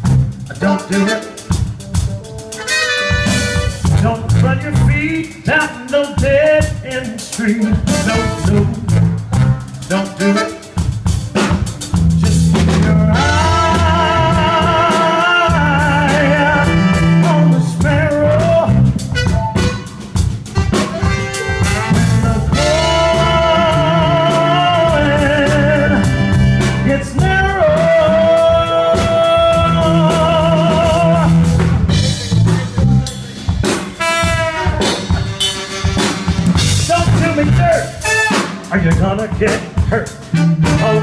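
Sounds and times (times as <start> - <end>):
live band playing: 0.0 - 41.0
man singing wordless notes: 0.4 - 1.6, 3.6 - 10.8, 12.2 - 19.4, 20.8 - 35.2, 36.8 - 41.0.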